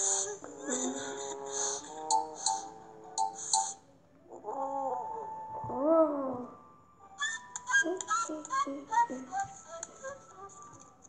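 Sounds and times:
light plinking tune: 2.1 - 3.8.

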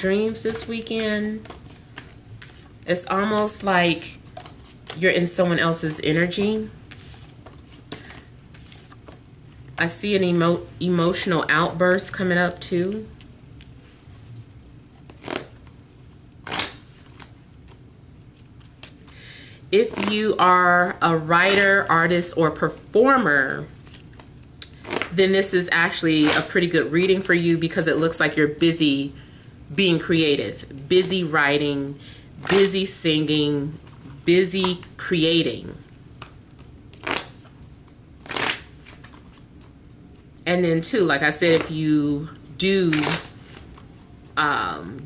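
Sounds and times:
cards being shuffled: 1.0 - 5.0, 6.3 - 9.8, 13.6 - 19.2, 19.8 - 20.3, 23.8 - 25.2, 36.2 - 40.3, 42.9 - 44.0.

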